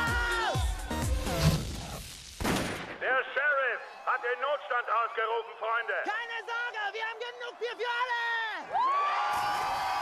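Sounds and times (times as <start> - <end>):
man shouting through a megaphone: 3.1 - 8.6.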